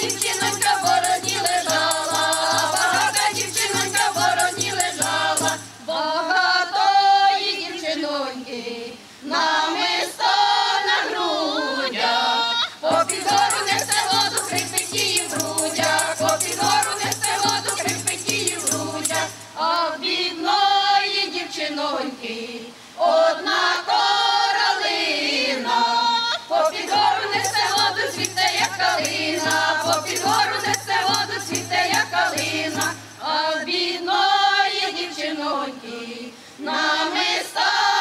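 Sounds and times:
tambourine beat: 0:00.0 - 0:05.8, 0:12.9 - 0:19.6, 0:26.6 - 0:33.4
women singing folk song: 0:00.0 - 0:38.0.

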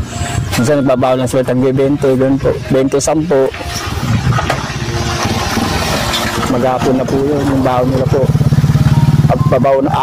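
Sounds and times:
vehicle engine running: 0:00.0 - 0:10.0.

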